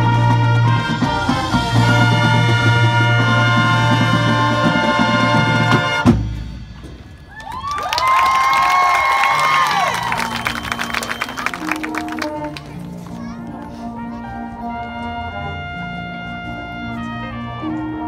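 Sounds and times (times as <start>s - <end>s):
loud brass chord: 0.0s - 6.3s, 11.6s - 18.0s
marching band playing: 0.0s - 18.0s.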